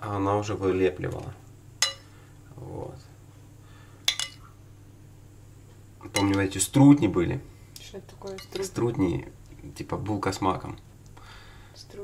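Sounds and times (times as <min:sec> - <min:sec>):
faint low hum: 0:00.0 - 0:12.0
metal spoon clinking on plate: 0:01.8 - 0:02.1, 0:04.1 - 0:04.4, 0:06.1 - 0:06.4, 0:08.3 - 0:08.7.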